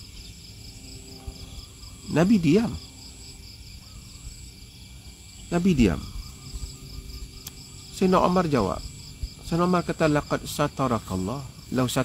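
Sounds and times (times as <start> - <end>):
insects chirping: 0.0 - 12.0.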